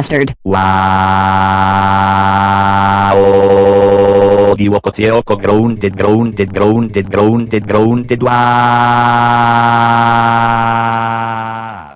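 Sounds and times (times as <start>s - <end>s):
text-to-speech voice holding oh: 8.1s - 11.9s.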